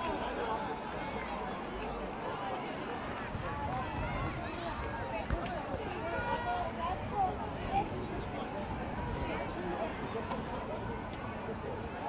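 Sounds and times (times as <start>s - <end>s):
children calling and shouting: 0.0s - 12.0s.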